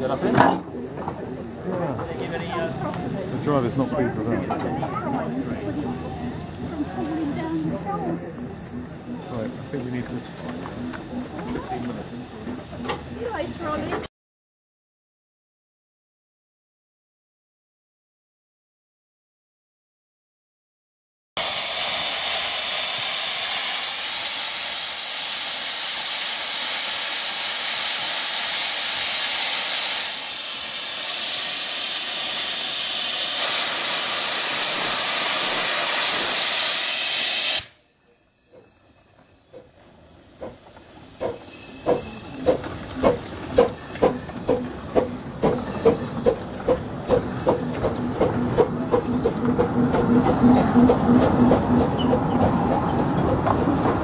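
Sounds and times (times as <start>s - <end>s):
steam hissing: 0.0s - 14.0s, 21.4s - 53.8s
steam locomotive chuffing: 0.0s - 14.1s, 21.4s - 54.0s.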